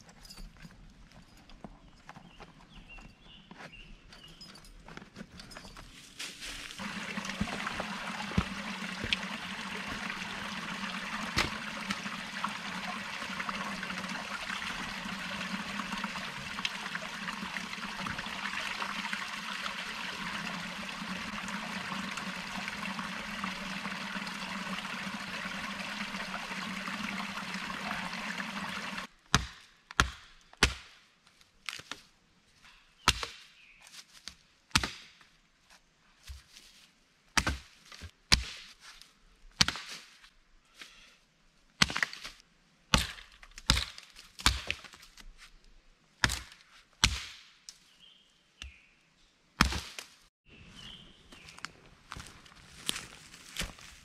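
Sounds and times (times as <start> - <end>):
stream trickling over rocks: 6.4 - 29.1.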